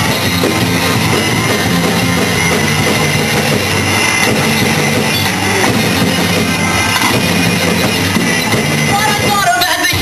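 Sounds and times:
rock band playing loud: 0:00.0 - 0:10.0.

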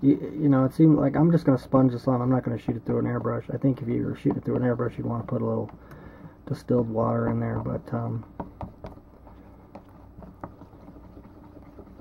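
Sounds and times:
low steady hum: 0:00.0 - 0:12.0
stick stirring paint in tin: 0:00.0 - 0:12.0.

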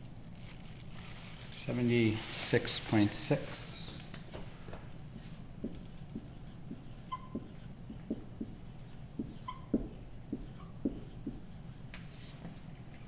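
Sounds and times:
marker writing on whiteboard: 0:05.1 - 0:12.7
marker tip squeaks: 0:06.7 - 0:07.7, 0:09.2 - 0:11.2.

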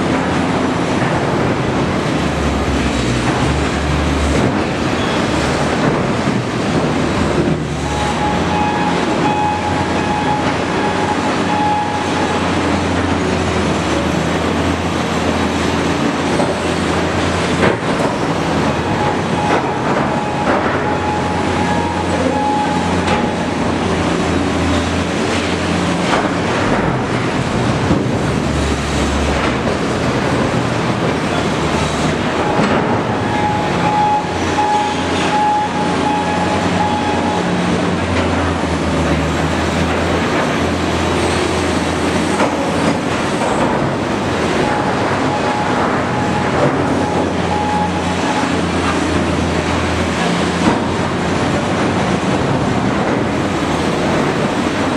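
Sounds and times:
diesel engine running under load: 0:00.0 - 0:54.9.

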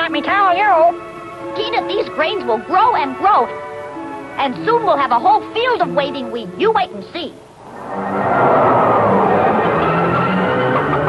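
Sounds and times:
rushing gust of wind: 0:07.6 - 0:09.5
low sustained orchestral notes: 0:07.6 - 0:11.0.

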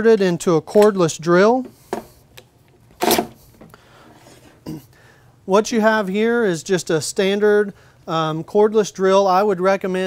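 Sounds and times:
man clearing his throat: 0:04.6 - 0:05.0.

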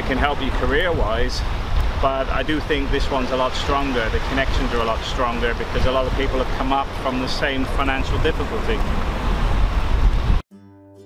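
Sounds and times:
surf: 0:00.0 - 0:10.4
wind rumbling on microphone: 0:00.0 - 0:10.4
plucked-string background music: 0:10.5 - 0:11.0.

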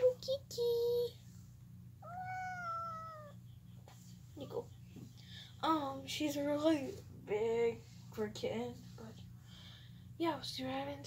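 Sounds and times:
kitten meowing: 0:02.0 - 0:03.4.

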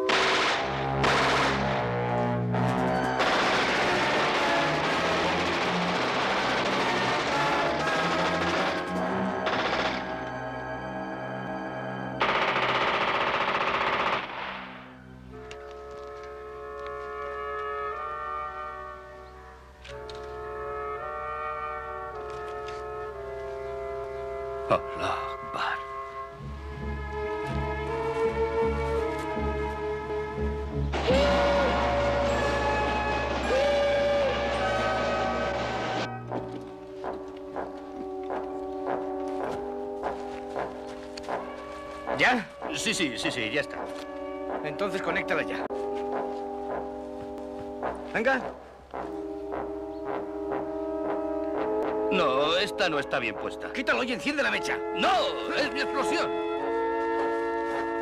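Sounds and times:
sharp gunshots: 0:00.0 - 0:02.1, 0:03.2 - 0:10.2, 0:12.2 - 0:15.0
orchestral brass chords: 0:00.0 - 0:12.4, 0:14.8 - 0:58.0.

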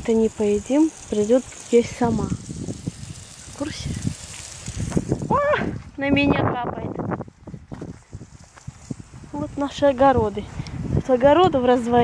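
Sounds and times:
outdoor background noise: 0:00.0 - 0:12.0
high-pitched exclamation: 0:05.3 - 0:05.8.

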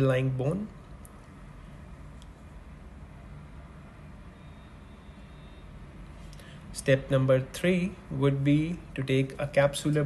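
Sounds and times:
faint thin high tone: 0:04.3 - 0:05.8.

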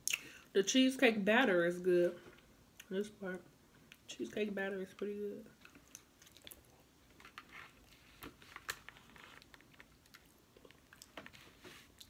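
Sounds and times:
mouth chewing with wet smacks: 0:05.6 - 0:06.8.

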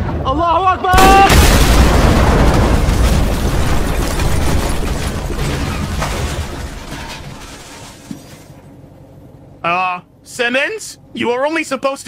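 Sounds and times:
explosion rumbling: 0:00.9 - 0:07.3.

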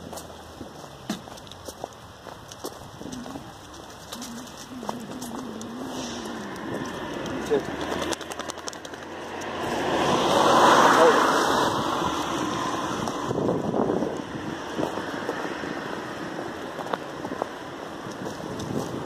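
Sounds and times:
car passing by: 0:05.6 - 0:19.0.

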